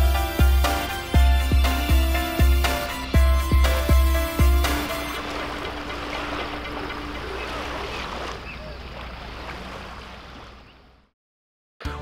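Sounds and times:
lake water lapping: 0.0 - 11.1.

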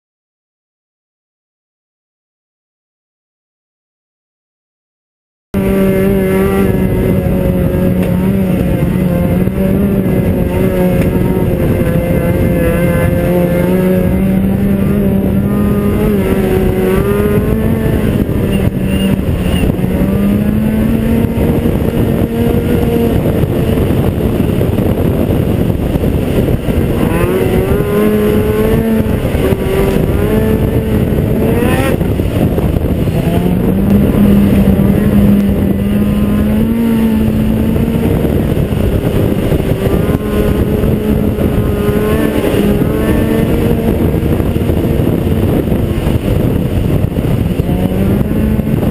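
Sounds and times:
snowmobile engine running: 5.6 - 48.9.

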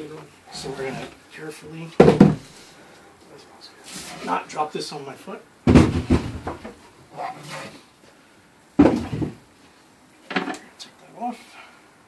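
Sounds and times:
heavy weight thudding on wood: 2.0 - 2.5, 5.6 - 6.8, 8.8 - 9.5.

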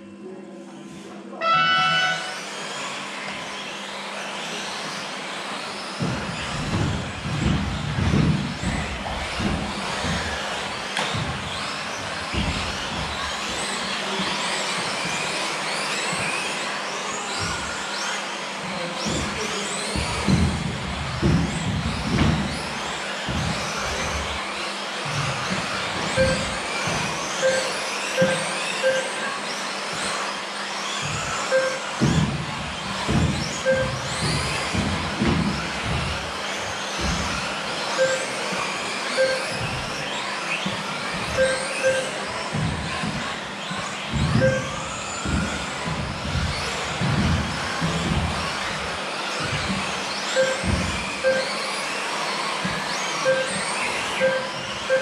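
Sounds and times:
electric toy car motors whining: 0.0 - 55.0
short beeps: 1.5 - 2.4, 26.2 - 26.5, 27.4 - 29.2, 31.5 - 31.8, 33.6 - 34.0, 38.0 - 38.3, 39.2 - 39.4, 41.4 - 42.1, 44.4 - 44.7, 50.4 - 50.6, 51.2 - 51.6, 53.3 - 53.6, 54.2 - 55.0
toy cars thumping on track: 5.8 - 18.2, 18.9 - 55.0.

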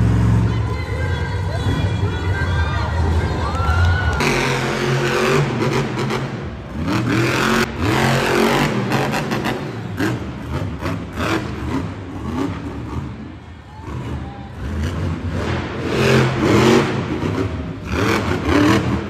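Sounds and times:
monster truck engines revving: 0.0 - 19.0.

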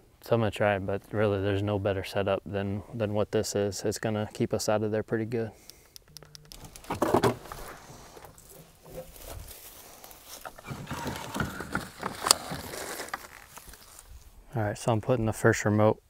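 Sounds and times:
rustling and handling noises: 6.5 - 14.4.

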